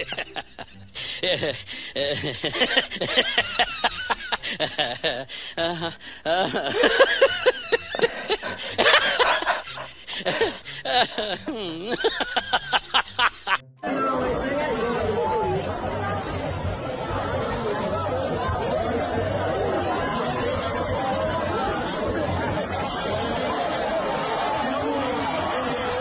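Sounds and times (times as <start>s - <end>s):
many voices talking: 0.0s - 26.0s
music: 0.0s - 26.0s
people laughing: 0.0s - 26.0s.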